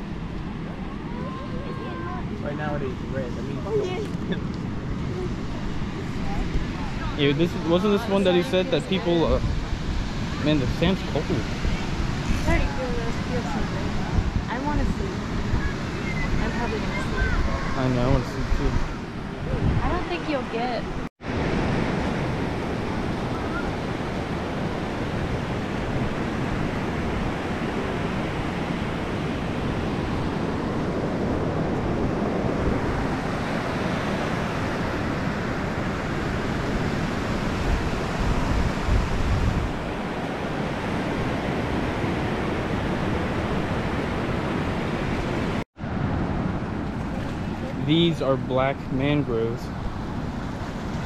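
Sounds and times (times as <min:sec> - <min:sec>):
ocean waves breaking on beach: 0:00.0 - 0:51.0
wind on microphone: 0:00.0 - 0:51.0.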